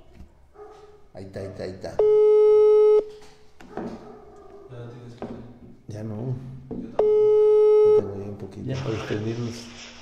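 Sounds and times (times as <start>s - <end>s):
loud electronic call beep: 2.0s - 3.0s, 7.0s - 8.0s.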